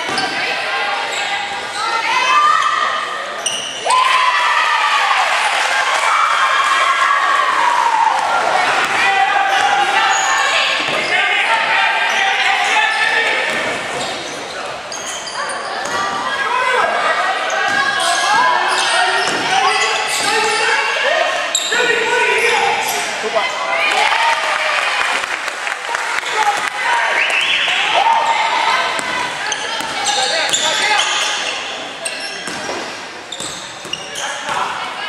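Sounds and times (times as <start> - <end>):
voices calling out in a hall: 0.0 - 35.0.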